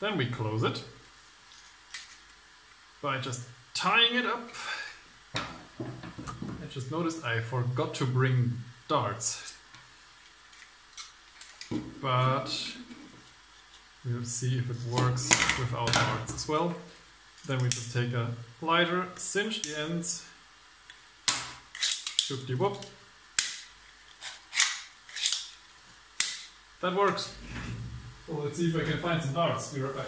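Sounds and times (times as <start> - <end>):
scissors and plastic clicks: 21.3 - 25.5.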